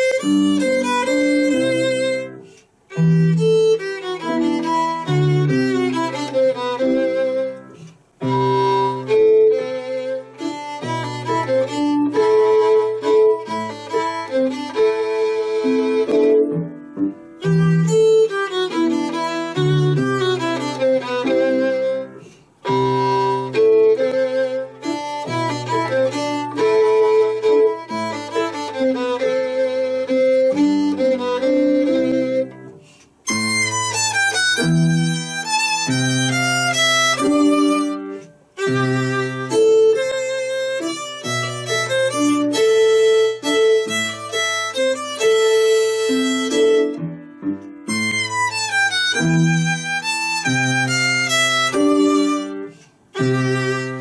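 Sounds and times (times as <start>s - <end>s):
grand piano accompaniment: 0.0s - 54.0s
violin melody: 0.0s - 54.0s.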